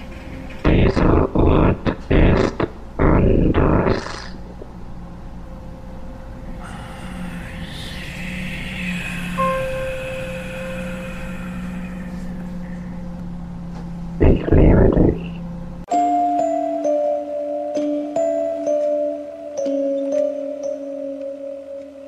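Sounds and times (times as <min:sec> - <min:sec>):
eerie high tones: 0:00.0 - 0:13.2
low drone hum: 0:00.0 - 0:15.9
held mid tone: 0:04.6 - 0:17.1.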